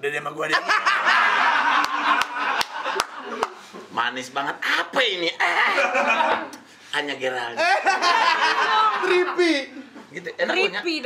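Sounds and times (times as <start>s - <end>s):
people laughing: 0.5s - 3.7s, 5.4s - 6.6s, 7.6s - 10.0s
hands clapping: 1.8s - 3.6s.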